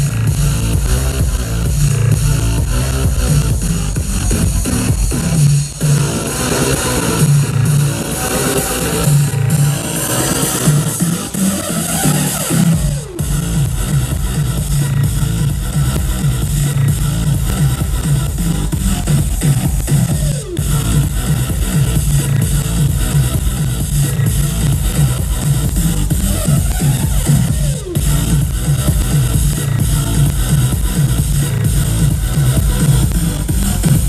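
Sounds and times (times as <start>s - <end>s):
distorted electronic dance music: 0.0s - 34.0s.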